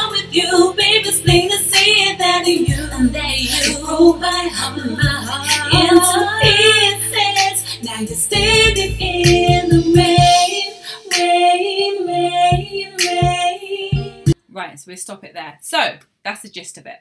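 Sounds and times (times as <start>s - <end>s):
low bass notes: 0.0s - 10.4s
female vocal with harmonies: 0.0s - 14.4s.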